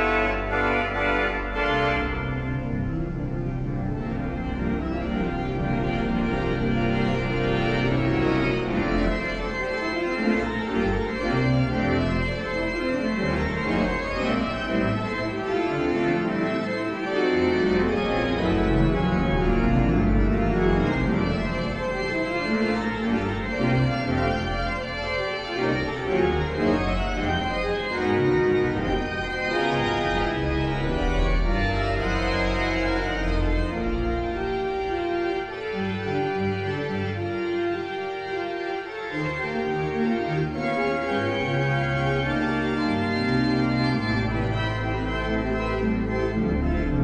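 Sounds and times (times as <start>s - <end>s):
pipe organ playing a toccata: 0.0s - 47.0s.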